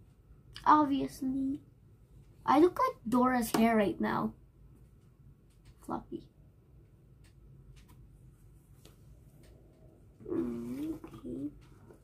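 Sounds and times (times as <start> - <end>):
girl humming: 10.2 - 11.2.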